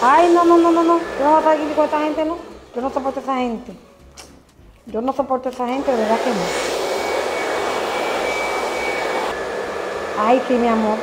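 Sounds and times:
hair dryer blowing: 0:00.0 - 0:03.7, 0:05.6 - 0:11.0.

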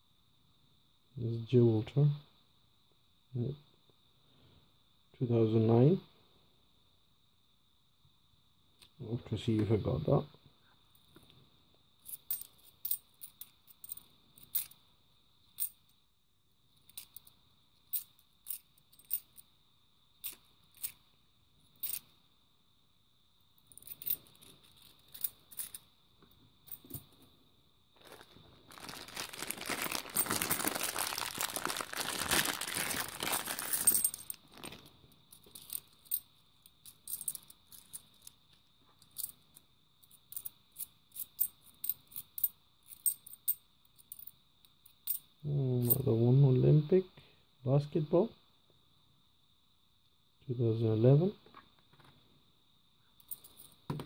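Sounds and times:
dense noise: 0:26.3 - 0:35.8
coins clinking together: 0:33.5 - 0:34.4.

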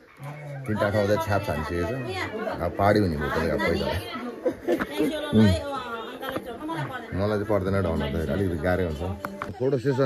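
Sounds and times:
people talking: 0:00.3 - 0:10.0.

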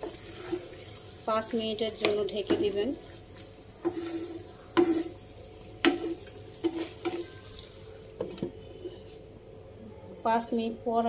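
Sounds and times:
faint frying sizzle: 0:00.0 - 0:11.0
spatula knocking and scraping pan: 0:01.9 - 0:02.9, 0:03.8 - 0:05.2, 0:05.8 - 0:07.3.

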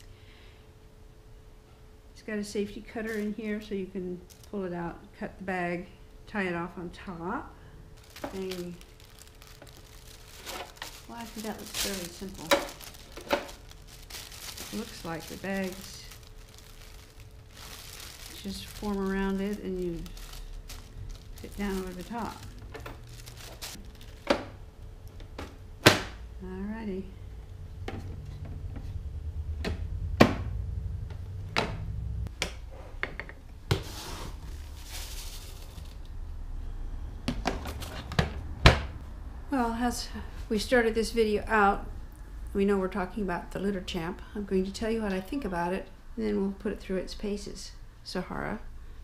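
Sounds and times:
low steady hum: 0:00.0 - 0:49.0
plastic bag crinkling: 0:03.0 - 0:03.4, 0:04.2 - 0:04.6, 0:08.0 - 0:24.3, 0:34.3 - 0:36.1.

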